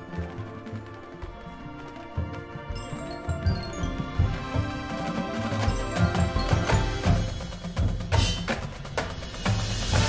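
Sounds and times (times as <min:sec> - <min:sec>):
marching band playing: 0:00.0 - 0:10.0.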